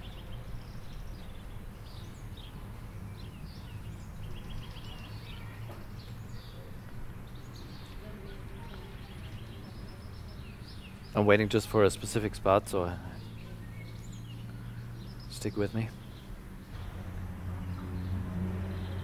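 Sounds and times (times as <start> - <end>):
distant street traffic rumble: 0.0 - 19.0
songbirds chirping: 0.0 - 19.0.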